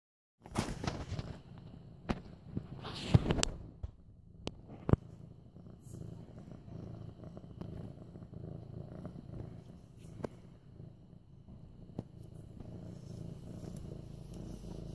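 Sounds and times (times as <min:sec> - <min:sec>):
kitten purring: 0:00.4 - 0:14.9.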